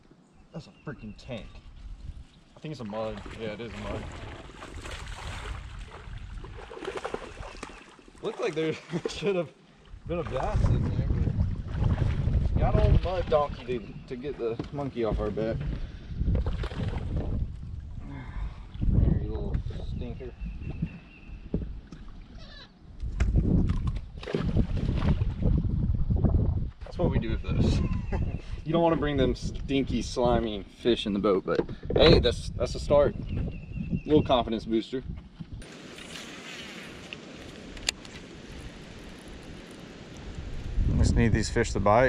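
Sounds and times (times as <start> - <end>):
wind rumbling on microphone: 1.0 - 2.5, 3.1 - 7.8, 9.8 - 42.0
fish splashing in water: 3.2 - 8.2.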